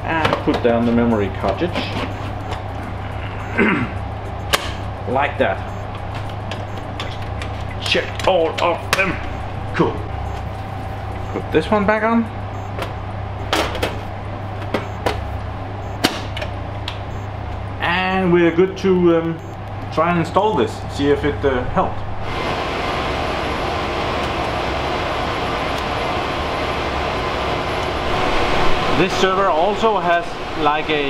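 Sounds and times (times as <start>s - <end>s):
server cooling fans whirring: 0.0s - 31.0s
steady low background hum: 0.0s - 31.0s
man clearing throat: 3.2s - 4.0s.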